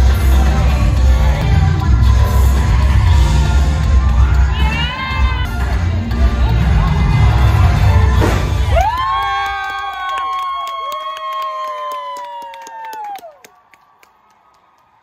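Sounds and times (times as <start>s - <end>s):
dance music with heavy beat: 0.0s - 8.9s
audience screaming and whooping: 2.0s - 15.0s.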